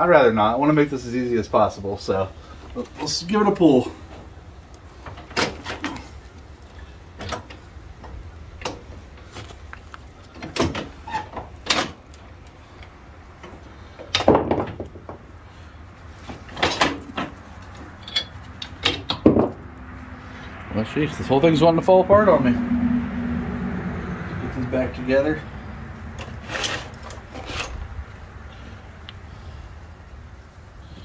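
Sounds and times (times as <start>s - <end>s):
low steady hum: 0.0s - 31.0s
metallic knocks and clanks: 18.0s - 19.6s.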